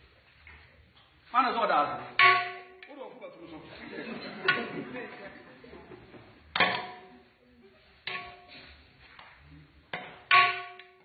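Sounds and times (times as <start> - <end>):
sharp ringing strike: 2.2 - 2.9.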